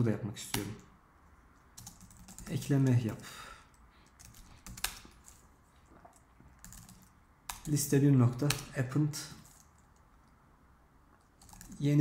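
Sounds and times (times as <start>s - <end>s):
computer keyboard typing: 1.8s - 3.2s, 4.1s - 5.4s, 6.5s - 8.8s, 11.3s - 12.0s.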